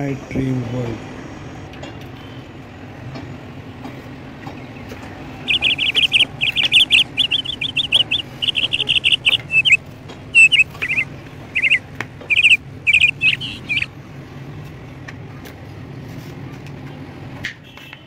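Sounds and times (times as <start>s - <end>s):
bird chirping high notes: 5.5s - 9.8s, 10.4s - 13.9s
steady low hum: 5.5s - 13.9s.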